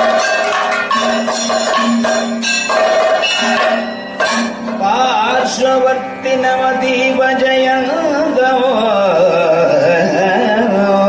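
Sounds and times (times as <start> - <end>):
percussion strikes: 0.0 - 9.0
person singing with ornamented pitch: 4.8 - 11.0.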